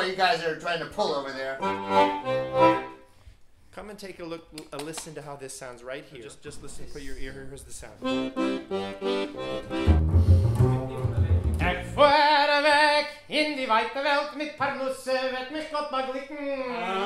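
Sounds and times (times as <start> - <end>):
piano accordion chords: 1.6 - 3.1, 8.0 - 12.3
man singing with vibrato: 10.6 - 17.0.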